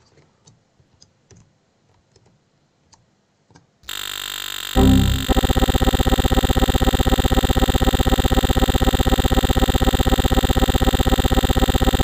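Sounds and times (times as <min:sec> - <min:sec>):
stuttering looping buzz: 0:03.9 - 0:12.0.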